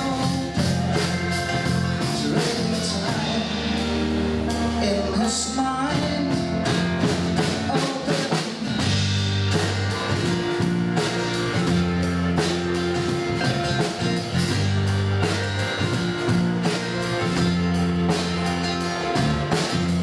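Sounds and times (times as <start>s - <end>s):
drum kit: 0.0s - 20.0s
electric bass long low notes: 0.0s - 20.0s
keyboard: 0.0s - 20.0s
strummed acoustic guitar: 0.0s - 20.0s.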